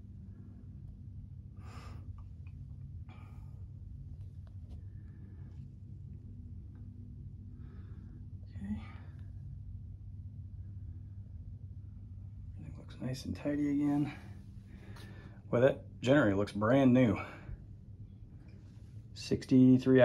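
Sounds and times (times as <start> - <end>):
soft breaths: 0.0 - 15.6, 17.1 - 19.3
faint low engine hum: 0.0 - 20.0.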